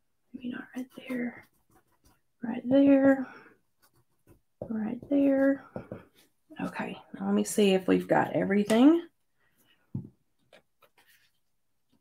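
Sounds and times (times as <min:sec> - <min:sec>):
brush dabbing on card: 0:00.5 - 0:02.6.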